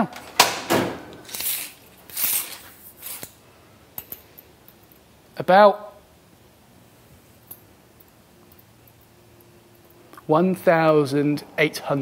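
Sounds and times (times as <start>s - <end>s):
tape measure blade scraping: 1.2s - 3.4s.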